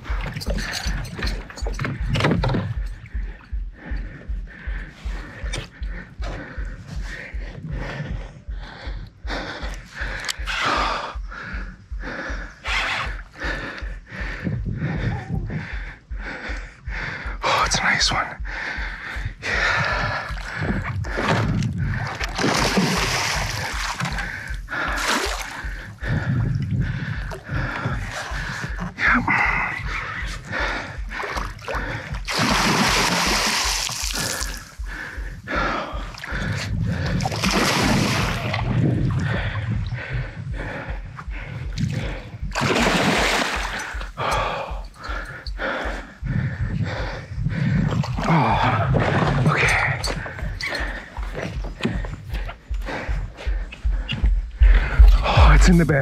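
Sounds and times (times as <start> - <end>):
fish thrashing and splashing water: 20.6 - 25.7, 31.2 - 34.8, 37.1 - 38.8, 42.6 - 44.1.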